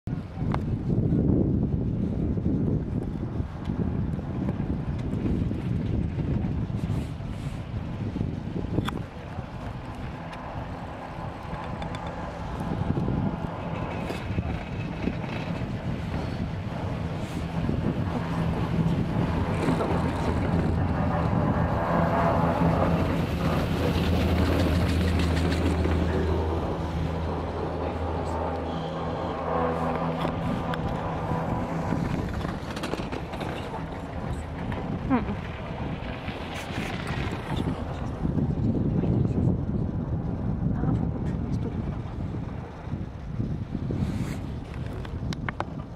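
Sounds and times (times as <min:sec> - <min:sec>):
wind buffeting microphone: 0:00.0 - 0:45.9
low hum of chairlift: 0:00.1 - 0:45.9.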